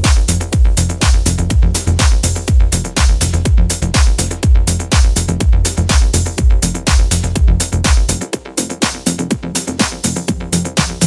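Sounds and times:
house dance music: 0.0 - 11.0.

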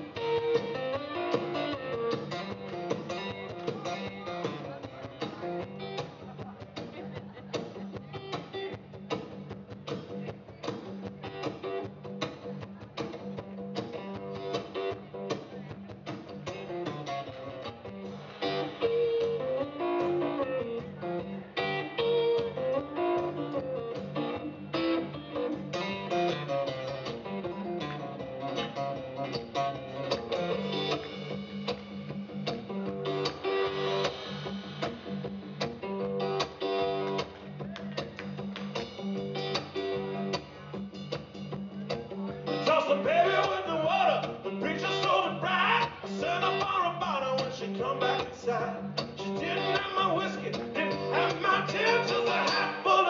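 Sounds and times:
blues guitar playing: 0.0 - 53.0.

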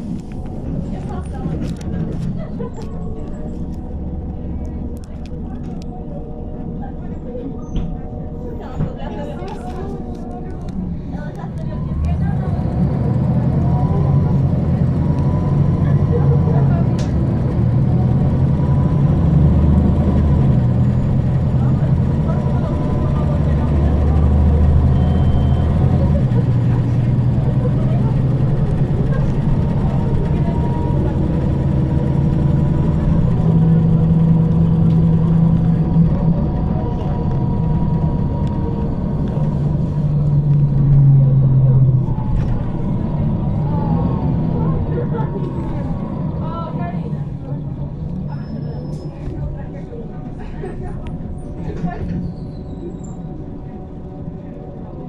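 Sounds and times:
bus engine driving: 0.0 - 55.0.

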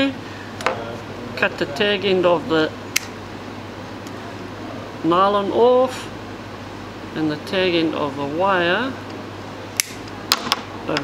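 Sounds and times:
side cutters snipping wire: 2.9 - 3.2, 9.8 - 10.1.

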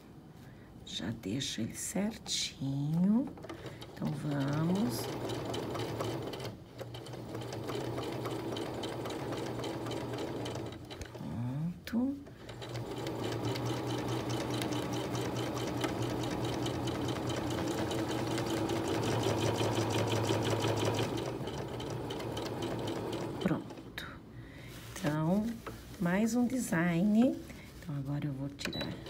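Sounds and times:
sewing machine stitching: 3.1 - 11.2, 12.2 - 23.9.

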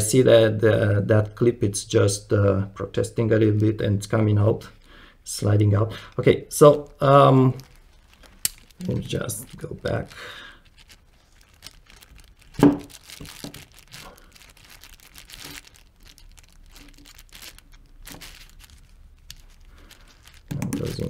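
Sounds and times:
plastic sheeting crinkling: 5.7 - 21.0.

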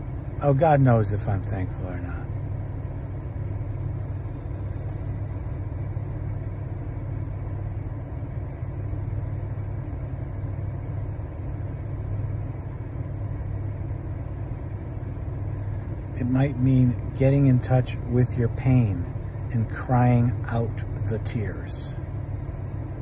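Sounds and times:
car engine running: 0.0 - 23.0.

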